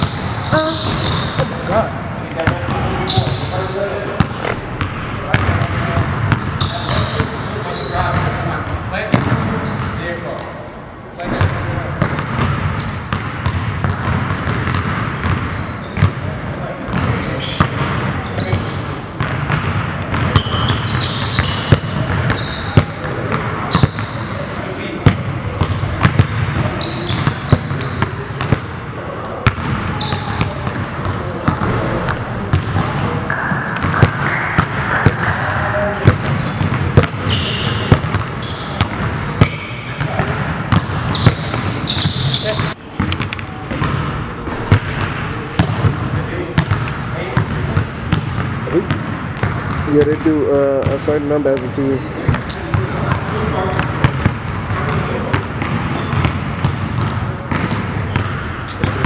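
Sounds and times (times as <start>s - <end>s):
sneaker squeaks: 0.0s - 10.5s, 12.8s - 16.2s, 16.9s - 19.0s, 20.0s - 28.7s, 29.4s - 35.7s, 36.3s - 45.8s, 49.4s - 54.2s, 57.0s - 59.0s
basketballs bouncing on hardwood: 4.2s - 7.3s, 11.3s - 16.2s, 19.2s - 24.1s, 25.0s - 28.6s, 29.4s - 35.4s, 36.0s - 46.0s, 52.7s - 59.0s.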